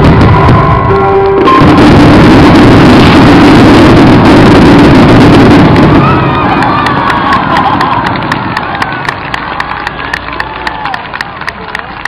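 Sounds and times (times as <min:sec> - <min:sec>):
fireworks bursting in a barrage: 0:00.0 - 0:10.0
music: 0:00.2 - 0:01.8.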